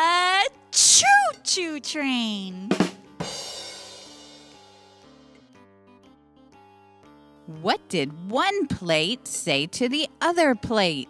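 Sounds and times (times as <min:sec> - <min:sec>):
drum hit: 0:02.7 - 0:04.7.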